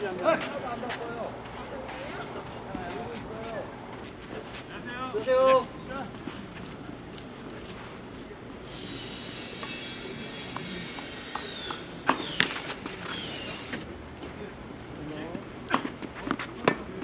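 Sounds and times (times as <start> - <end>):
high hissing squeal: 8.6 - 13.8.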